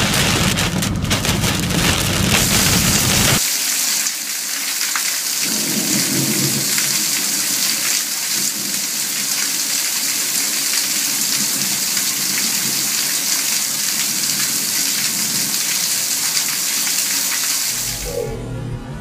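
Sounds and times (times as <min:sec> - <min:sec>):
low rumble: 0:00.0 - 0:03.4, 0:17.8 - 0:19.0
heavy rain pouring: 0:00.0 - 0:18.3.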